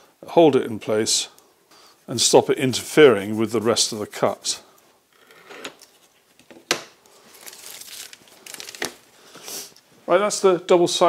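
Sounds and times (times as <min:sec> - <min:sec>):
tape crinkling rustle: 0:05.8 - 0:09.9.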